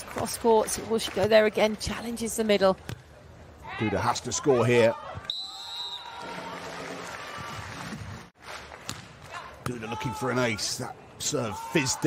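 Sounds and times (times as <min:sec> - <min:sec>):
stadium crowd noise: 0:00.0 - 0:12.0
referee's whistle: 0:05.2 - 0:06.2.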